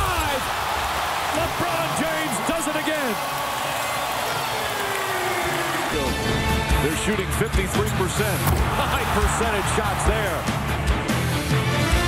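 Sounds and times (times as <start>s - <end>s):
sports commentary: 0.0s - 3.5s, 4.3s - 10.7s
arena crowd noise: 0.0s - 12.0s.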